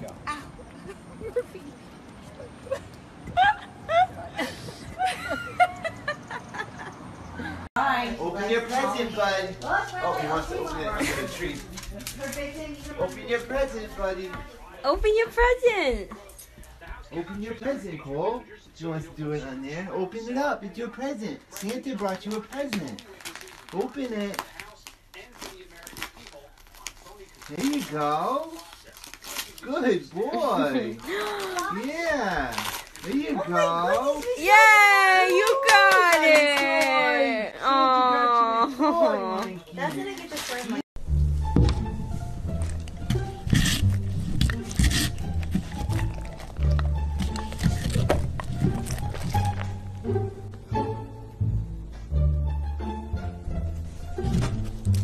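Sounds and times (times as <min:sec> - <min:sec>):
wrapping paper crinkling and tearing: 0:11.0 - 0:13.3, 0:21.4 - 0:35.0, 0:39.8 - 0:40.8.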